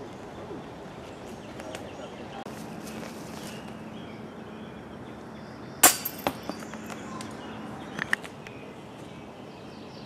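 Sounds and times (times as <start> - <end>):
disc clanking chain basket: 5.8 - 6.8
disc clinking off chains: 5.8 - 6.9.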